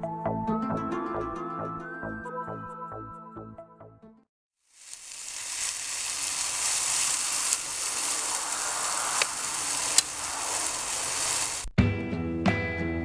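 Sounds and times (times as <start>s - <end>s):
food sizzling in a pan: 4.6s - 11.7s.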